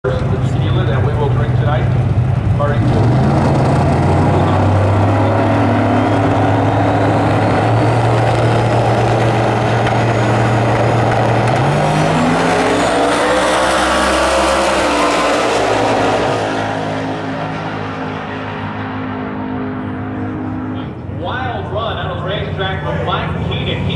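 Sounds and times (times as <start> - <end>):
race car engines revving: 0.1 - 23.9.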